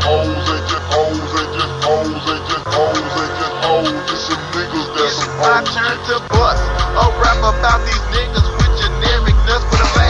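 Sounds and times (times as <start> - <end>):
repeating melodic riff: 0.0 - 10.0
deep bass: 5.8 - 10.0.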